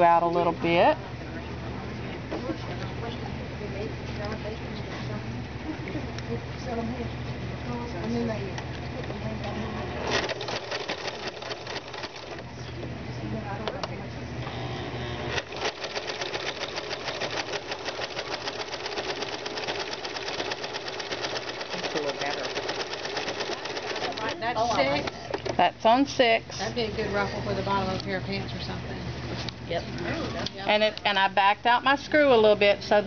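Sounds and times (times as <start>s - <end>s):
sewing machine ticking: 10.1s - 12.4s, 15.4s - 24.4s.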